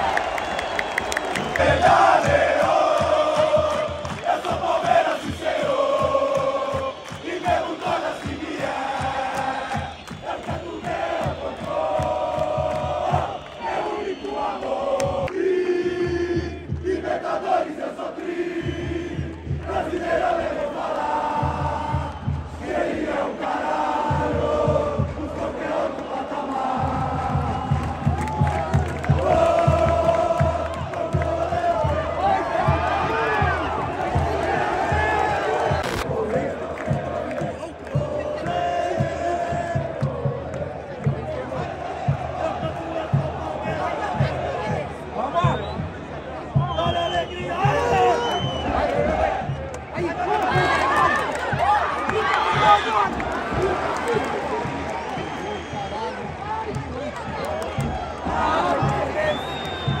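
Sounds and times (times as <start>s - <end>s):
crowd chanting in unison: 0.0s - 60.0s.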